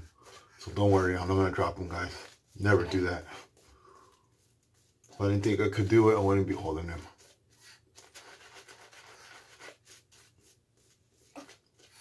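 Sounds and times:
shaving brush rubbing lather: 0.0 - 12.0.

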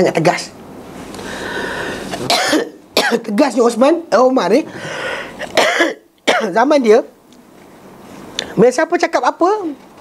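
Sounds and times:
man clearing his throat: 2.3 - 3.2, 5.6 - 6.5
man coughing: 2.3 - 3.2, 5.4 - 6.6.

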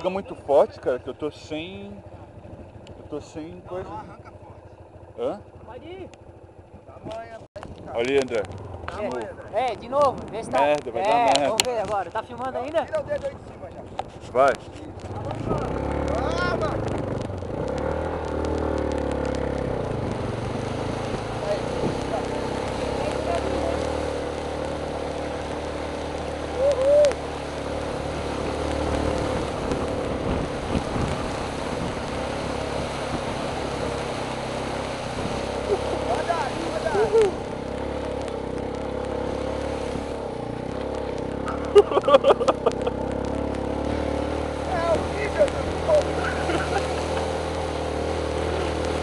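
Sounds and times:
water rushing: 0.0 - 5.7, 7.8 - 49.0
motorcycle engine pulling away: 0.0 - 13.5, 14.2 - 49.0.

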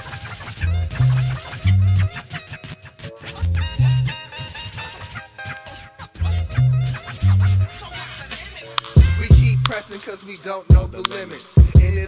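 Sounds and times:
hip hop beat: 0.0 - 12.0
turntable scratching: 0.0 - 12.0
deep bass note: 9.0 - 9.7.

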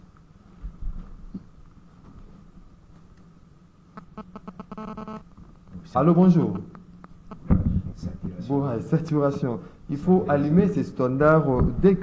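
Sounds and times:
held telephone line buzz: 4.0 - 5.3.

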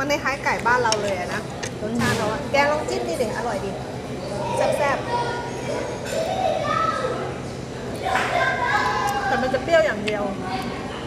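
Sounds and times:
diners talking: 0.0 - 11.0.

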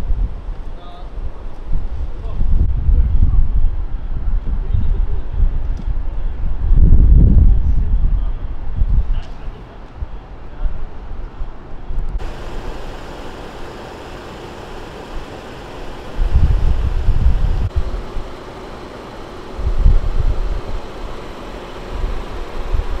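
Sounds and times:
wind buffeting microphone: 1.2 - 9.2, 10.0 - 23.0
city street noise: 8.0 - 23.0.

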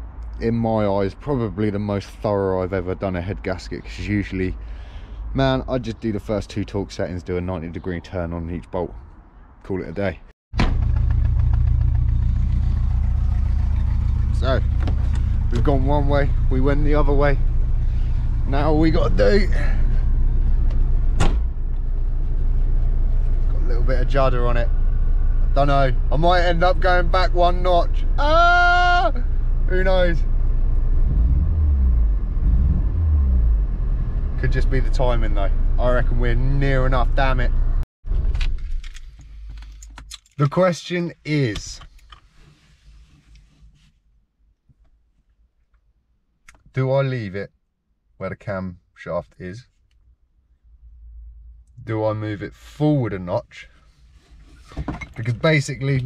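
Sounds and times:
car engine idling: 10.6 - 27.5
low rumble: 10.6 - 27.5.

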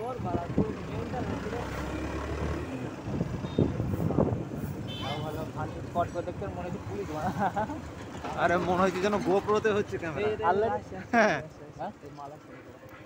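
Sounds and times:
people talking: 0.0 - 2.0
moving vehicle road noise: 0.0 - 13.0.

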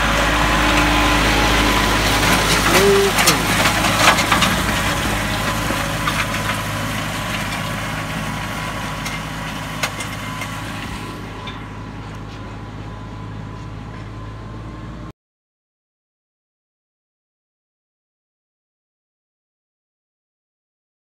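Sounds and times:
tractor diesel engine running: 0.0 - 15.1.

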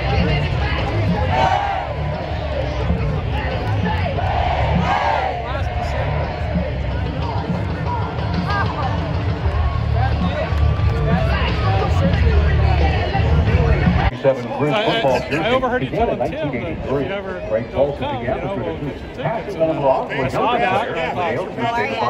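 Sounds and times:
music over public address: 0.0 - 22.0
stadium crowd noise: 0.0 - 22.0
voices calling and shouting: 0.0 - 22.0.

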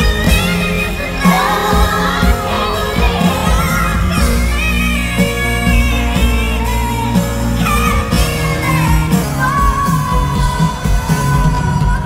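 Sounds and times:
live band playing: 0.0 - 12.0
woman singing: 0.0 - 12.0.

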